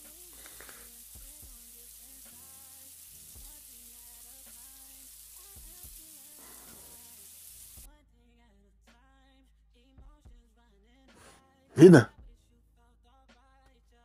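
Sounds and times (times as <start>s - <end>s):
shower water spraying: 0.0s - 7.9s.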